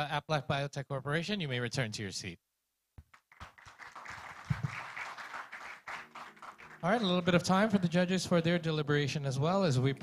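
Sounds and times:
audience applauding: 3.1s - 8.0s.

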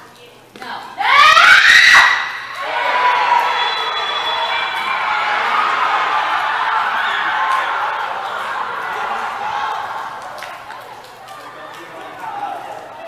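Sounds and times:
crowd shouting: 1.0s - 13.0s.

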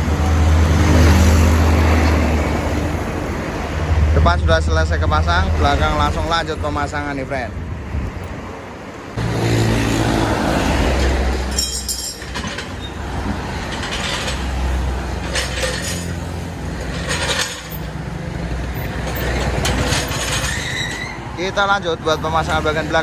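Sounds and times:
road traffic passing: 0.0s - 23.0s.

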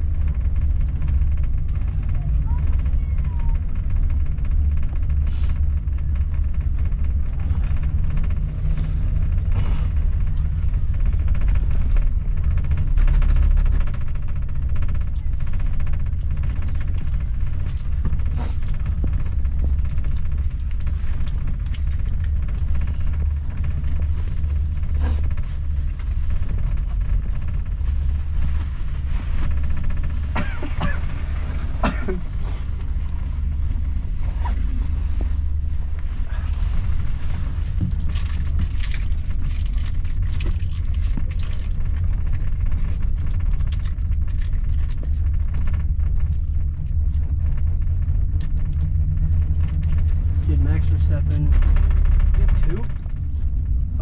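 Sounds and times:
gondola cabin rumble: 0.0s - 54.0s.

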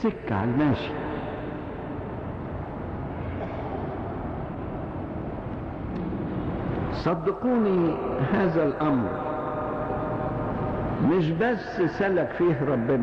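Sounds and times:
hall hiss and rumble: 0.0s - 13.0s.

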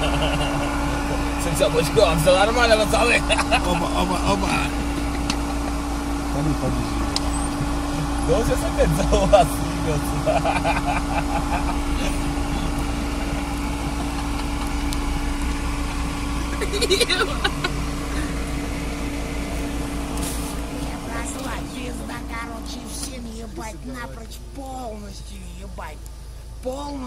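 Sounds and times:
vehicle engine idling: 0.0s - 27.0s.

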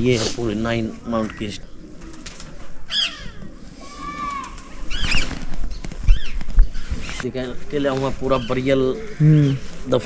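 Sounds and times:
birds chirping and whistling: 2.9s - 7.2s, 8.2s - 9.6s.

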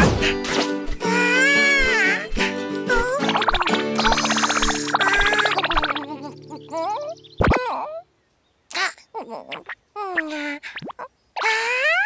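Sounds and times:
bouncy cartoon music: 0.0s - 7.2s
cartoon creature vocal sounds: 3.1s - 8.0s, 8.7s - 12.0s.

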